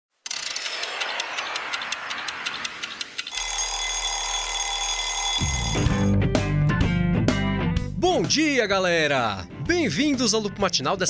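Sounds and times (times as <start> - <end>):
clock ticking rapidly: 0.3 - 6.0
alarm clock ringing: 0.3 - 6.1
guitar music: 5.4 - 8.0.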